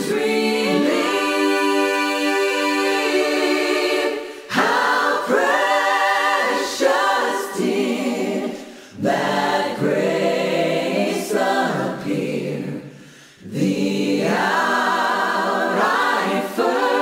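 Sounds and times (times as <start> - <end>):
unaccompanied choir singing: 0.0 - 17.0.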